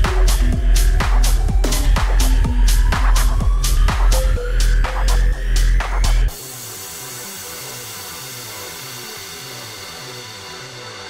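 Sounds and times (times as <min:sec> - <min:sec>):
loud bass-heavy electronic music: 0:00.0 - 0:11.0.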